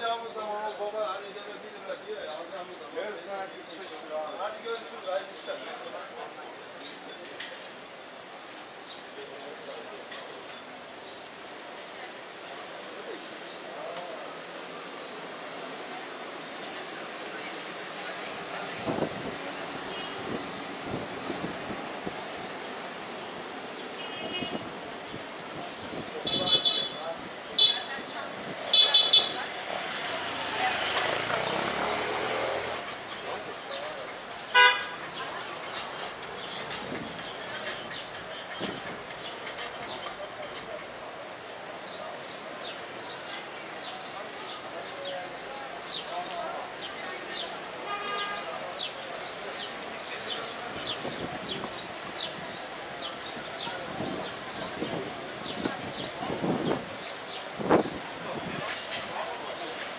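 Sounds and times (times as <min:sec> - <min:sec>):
passers-by talking: 0:00.0 - 0:59.9
vehicle horn tooting: 0:24.0 - 0:24.7, 0:26.2 - 0:27.0, 0:27.6 - 0:27.9, 0:28.7 - 0:29.4, 0:34.5 - 0:35.0, 0:47.8 - 0:48.6
vehicle passing: 0:29.3 - 0:33.0.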